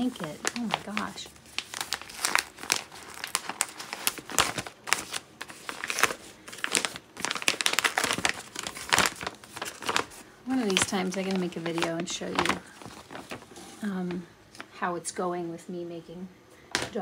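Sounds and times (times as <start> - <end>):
wrapping paper crinkling: 0.0 - 14.8.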